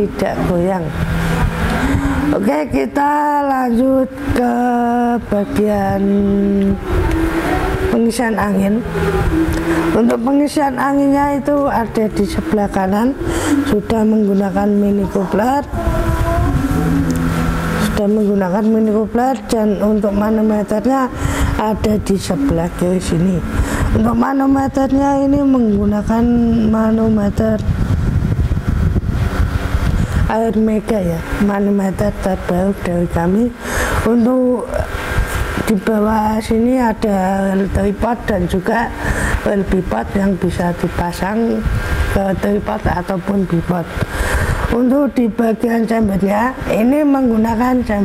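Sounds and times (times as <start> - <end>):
microphone handling and clothing rub: 5.2 - 48.0.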